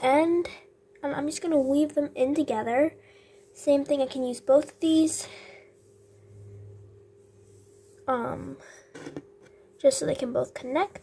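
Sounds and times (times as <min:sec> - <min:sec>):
low hum: 0:04.4 - 0:08.7.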